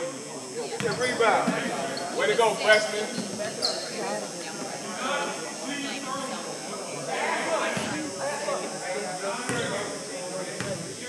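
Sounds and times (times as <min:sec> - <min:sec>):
indistinct talking in a gymnasium: 0:00.0 - 0:11.0.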